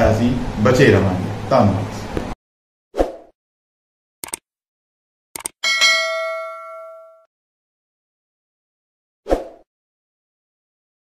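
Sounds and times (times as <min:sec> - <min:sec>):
notification bell ding: 0:05.6 - 0:07.3.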